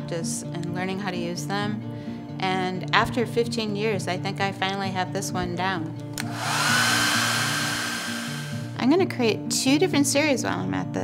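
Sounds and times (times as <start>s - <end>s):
hair dryer running: 6.2s - 8.8s.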